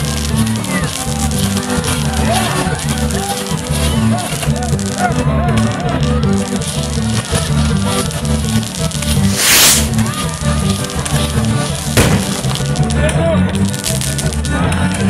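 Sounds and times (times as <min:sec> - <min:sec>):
hissing burst of sparks: 0:08.9 - 0:10.1, 0:12.0 - 0:12.9
firework sharp bang: 0:09.3 - 0:10.0, 0:12.0 - 0:12.9
music with steady beat: 0:12.0 - 0:12.9.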